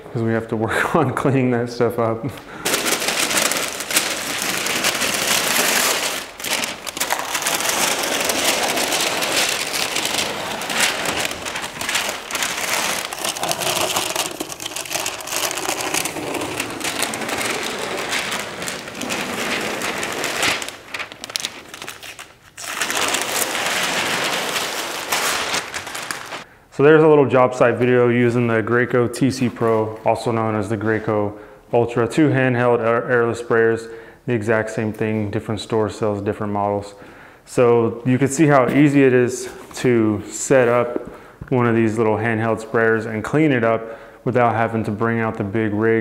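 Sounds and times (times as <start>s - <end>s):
paper and tape peeled and crumpled: 2.6s - 26.4s.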